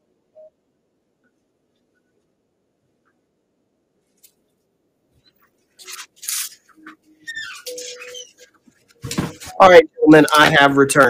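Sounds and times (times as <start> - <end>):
rustling and handling noises: 4.0 - 11.0
short creaks: 5.2 - 9.1.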